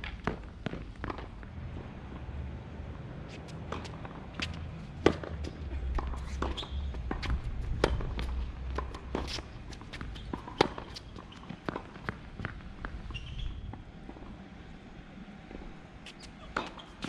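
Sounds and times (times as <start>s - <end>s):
tennis ball bouncing: 0.1s - 1.4s, 3.2s - 14.3s, 15.5s - 17.0s
shoe squeaking on court: 3.3s - 12.2s, 12.9s - 13.8s, 16.0s - 17.0s.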